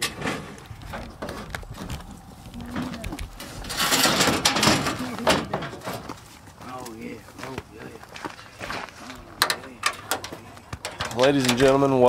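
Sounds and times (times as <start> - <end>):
clicks and metal clatter: 0.0 - 6.2, 9.4 - 11.8
loud scraping rattle of metal ramp: 3.4 - 6.1.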